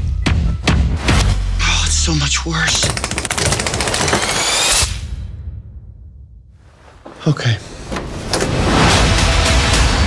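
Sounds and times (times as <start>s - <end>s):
trailer music: 0.0s - 6.6s, 7.7s - 10.0s.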